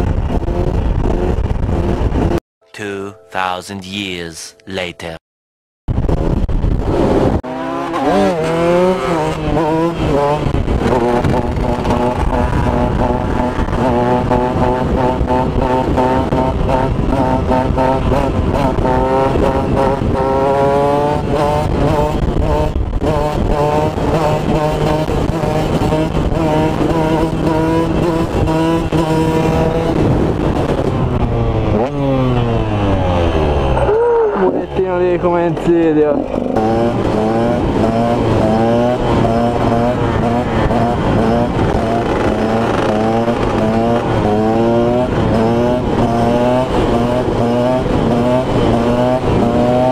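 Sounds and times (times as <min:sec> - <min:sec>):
motorcycle engine revving high: 0:06.0 - 0:35.2, 0:36.1 - 0:49.9.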